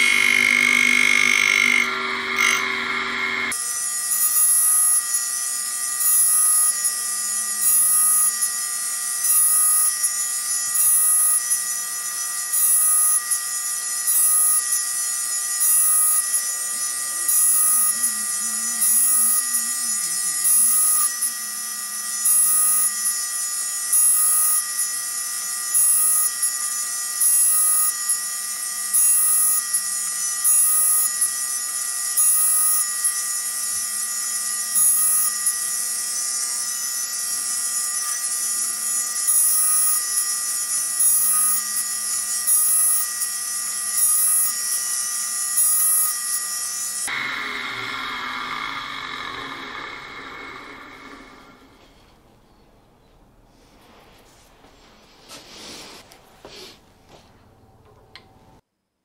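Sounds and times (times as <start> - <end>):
grinding wheel hissing on steel: 0.0 - 52.0
grinder running: 0.0 - 52.1.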